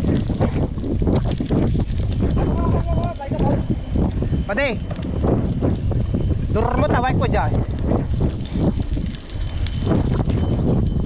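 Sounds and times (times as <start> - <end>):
bike rattling clicks: 0.0 - 11.0
wind buffeting microphone: 0.0 - 11.0.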